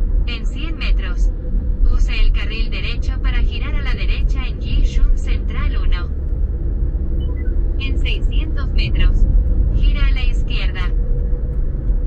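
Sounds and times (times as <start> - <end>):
car driving rumble: 0.0 - 12.0.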